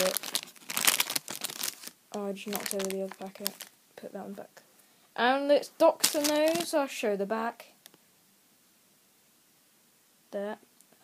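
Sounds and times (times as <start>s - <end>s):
plastic packet crinkling: 0.0s - 3.8s, 5.9s - 6.8s.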